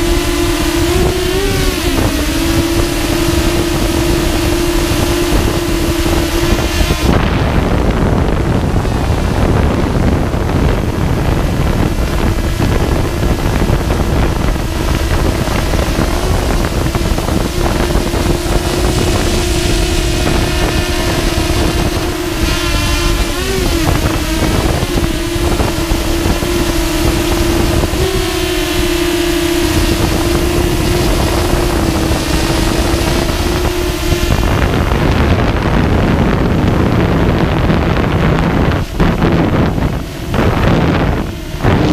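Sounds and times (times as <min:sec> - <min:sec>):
drone motors humming: 0:00.0 - 0:41.9
wind buffeting microphone: 0:00.0 - 0:41.9.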